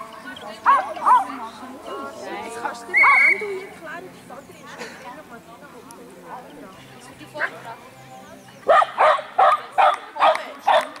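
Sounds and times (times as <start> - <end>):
small dog barking: 8.7 - 11.0.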